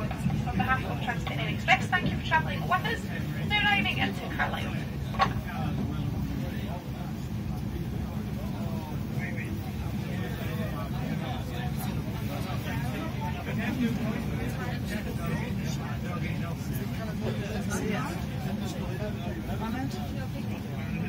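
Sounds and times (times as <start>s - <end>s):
train rumbling: 0.0s - 18.1s
faint passenger chatter: 0.0s - 21.0s.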